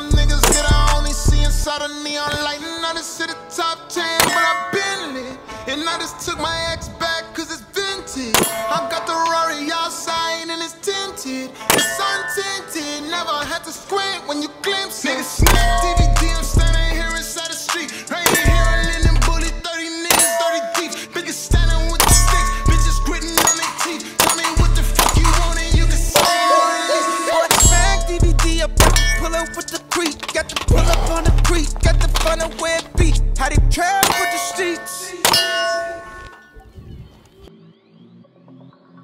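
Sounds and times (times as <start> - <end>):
hip-hop beat with heavy bass: 0.0 - 36.4
steel targets ringing: 4.2 - 5.2, 8.4 - 9.2, 11.7 - 12.9, 15.5 - 16.2, 18.2 - 19.0, 20.1 - 20.9, 22.0 - 25.5, 26.2 - 29.8, 33.9 - 36.6
carbine gunshots: 22.0 - 22.6, 23.3 - 28.2, 34.0 - 35.4.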